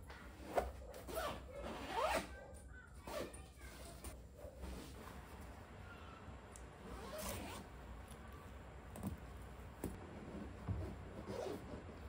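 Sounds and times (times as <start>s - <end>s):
fabric being handled: 0.0s - 2.4s, 3.0s - 5.7s, 8.9s - 12.0s
zipper pulls: 0.3s - 2.3s, 3.1s - 4.1s, 6.8s - 7.7s, 11.2s - 12.0s.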